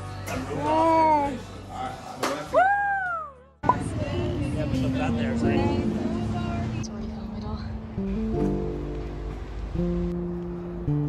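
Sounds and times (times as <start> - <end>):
background music held chords: 6.8 - 11.0.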